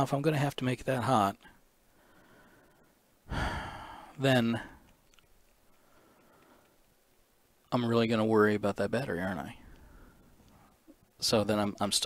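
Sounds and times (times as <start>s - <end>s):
man sighing heavily: 3.3s - 4.8s.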